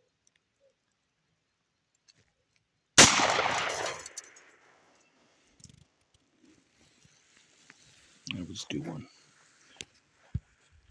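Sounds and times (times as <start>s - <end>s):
pistol shot: 3.0s - 4.4s.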